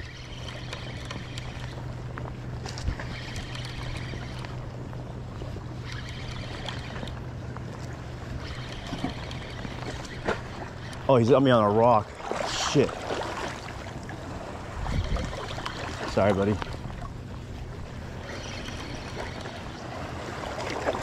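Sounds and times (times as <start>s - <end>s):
fishing reel cranking: 0.0s - 1.8s, 2.6s - 4.6s, 5.8s - 7.2s, 8.4s - 11.1s, 18.2s - 19.8s
low engine hum: 0.0s - 21.0s.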